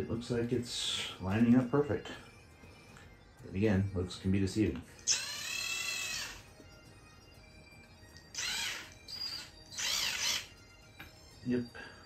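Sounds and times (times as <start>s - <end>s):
cordless drill motor whine: 5.1s - 6.5s, 8.3s - 10.6s.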